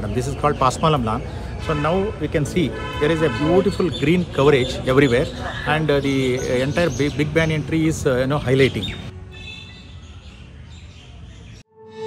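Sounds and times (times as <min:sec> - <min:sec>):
faint outdoor background noise: 0:00.0 - 0:11.7.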